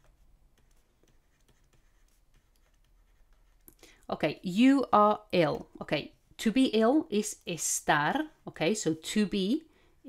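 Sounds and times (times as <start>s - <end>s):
stylus tapping and scratching: 0.0s - 3.9s.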